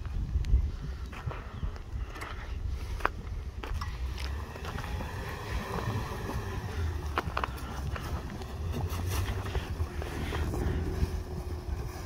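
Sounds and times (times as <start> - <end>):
low steady rumble: 0.0 - 12.0
snow crunching: 4.2 - 12.0.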